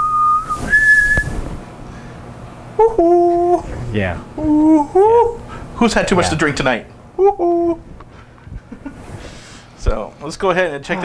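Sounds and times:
person whistling notes: 0:00.0 - 0:01.4.

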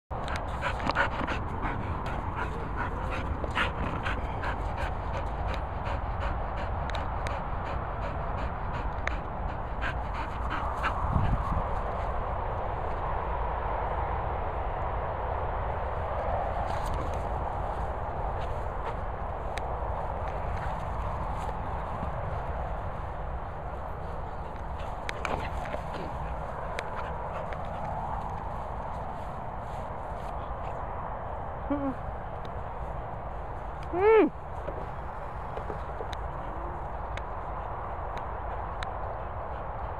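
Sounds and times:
dog panting: 0:00.2 - 0:12.2, 0:18.4 - 0:29.4, 0:34.7 - 0:39.9.

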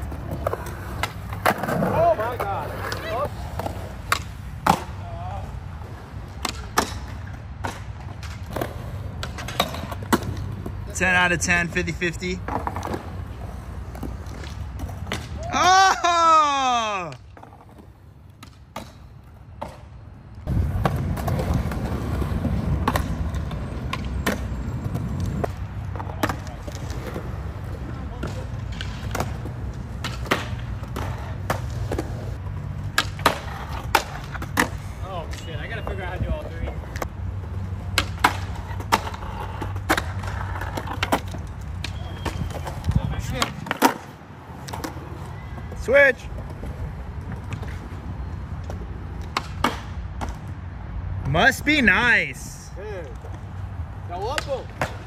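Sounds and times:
skateboard wheels rolling on concrete: 0:00.0 - 0:55.0
skateboard wooden clacks: 0:28.2 - 0:36.0, 0:54.2 - 0:55.0.

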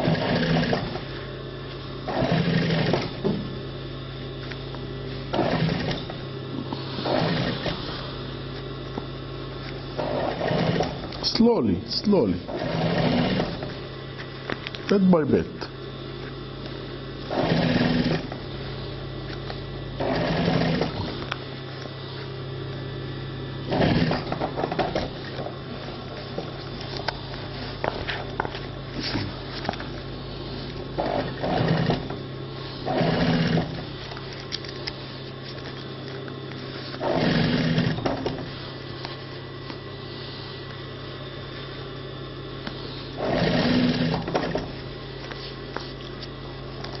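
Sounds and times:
sewing machine stitching denim: 0:00.0 - 0:01.1, 0:02.1 - 0:03.2, 0:05.3 - 0:06.2, 0:07.0 - 0:07.8, 0:10.0 - 0:11.1, 0:12.4 - 0:13.7, 0:17.3 - 0:18.4, 0:20.0 - 0:21.2, 0:23.7 - 0:25.2, 0:30.9 - 0:32.2, 0:32.8 - 0:33.9, 0:37.0 - 0:38.4, 0:43.2 - 0:44.7
sewing machine motor hum: 0:00.0 - 0:22.3, 0:23.1 - 0:39.8, 0:42.6 - 0:47.0.

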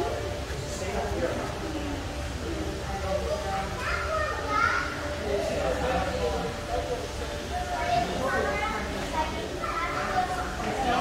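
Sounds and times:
chatter of visitors: 0:00.0 - 0:11.0.

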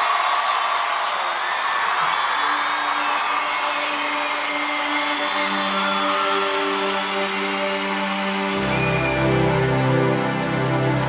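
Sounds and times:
concert crowd noise: 0:00.0 - 0:11.0.

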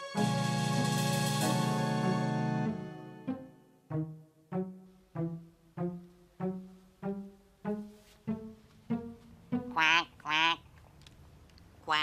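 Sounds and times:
duck quacking: 0:09.7 - 0:10.7.

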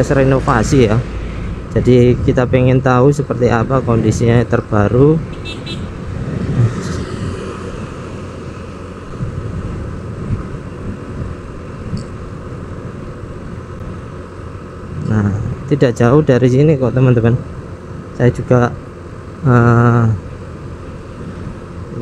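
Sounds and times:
scooter riding rumble: 0:00.0 - 0:16.5.

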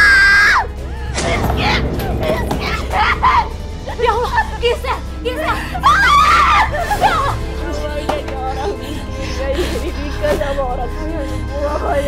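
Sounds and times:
background music: 0:00.0 - 0:12.0
woman crying: 0:02.9 - 0:12.0.

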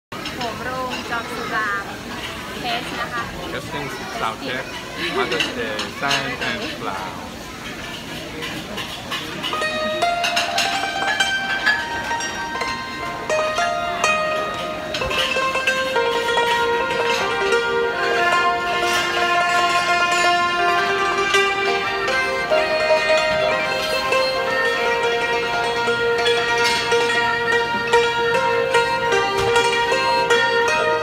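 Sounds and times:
bowed two-string fiddle: 0:00.2 - 0:31.0
hammered dulcimer notes: 0:00.2 - 0:31.0.

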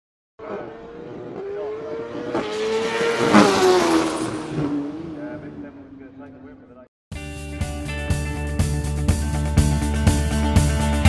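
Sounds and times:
motorcycle engine passing by: 0:00.4 - 0:06.1.

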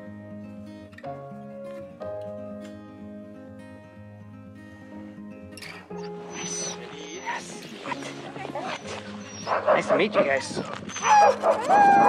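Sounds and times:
background music: 0:00.0 - 0:12.0
dogs yipping and whining: 0:05.7 - 0:12.0.

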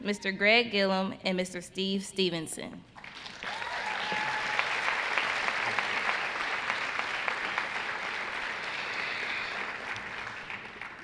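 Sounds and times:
audience applauding: 0:03.0 - 0:11.0.

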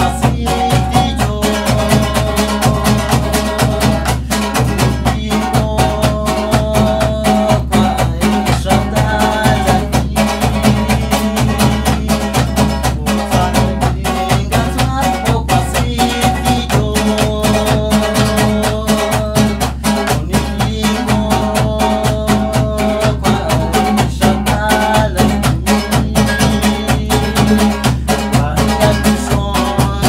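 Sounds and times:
acoustic guitar: 0:00.0 - 0:30.0
double-headed drum beat: 0:00.0 - 0:30.0
folk melody: 0:00.0 - 0:30.0.

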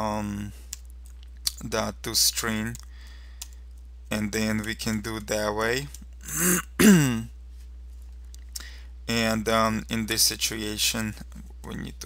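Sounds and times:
man clearing his throat: 0:06.2 - 0:07.3.

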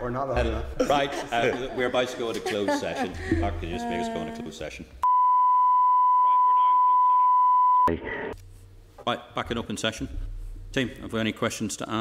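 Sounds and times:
voice: 0:00.0 - 0:04.9
steady electronic beep tone: 0:05.0 - 0:07.9.

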